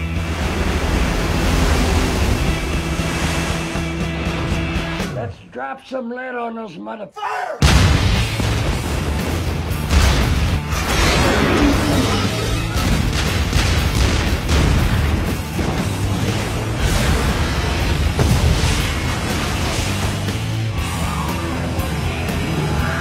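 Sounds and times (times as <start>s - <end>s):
loud film music: 0.0s - 5.5s, 7.6s - 23.0s
shells exploding: 7.6s - 16.1s
big guns firing: 7.6s - 21.0s.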